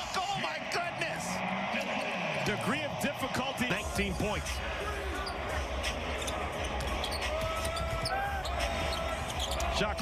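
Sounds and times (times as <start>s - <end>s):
sneaker squeak: 6.2s - 9.7s.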